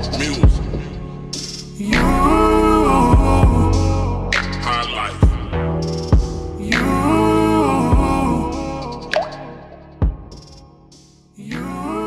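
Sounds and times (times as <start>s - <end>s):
slowed reverb-heavy rnb instrumental: 0.0s - 12.0s.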